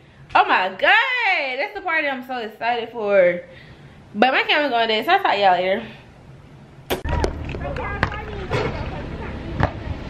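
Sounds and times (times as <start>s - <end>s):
faint voices: 7.1s - 10.0s.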